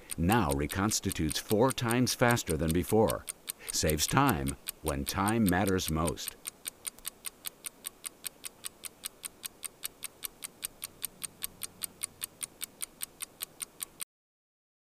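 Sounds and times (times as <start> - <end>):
stopwatch ticking: 0.0 - 14.0.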